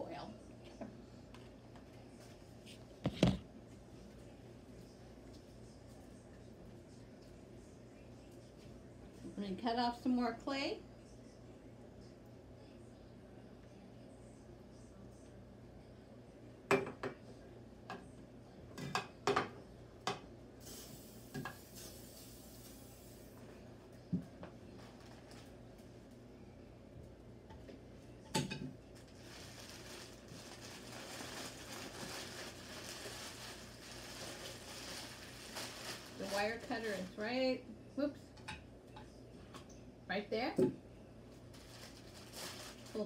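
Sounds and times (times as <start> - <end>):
rustling: 41.5 - 43.0.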